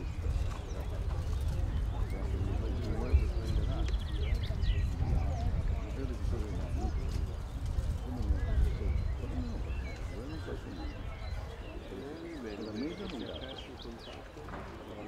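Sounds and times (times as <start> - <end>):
birds chirping: 0.0 - 15.0
indistinct voices talking: 0.0 - 15.0.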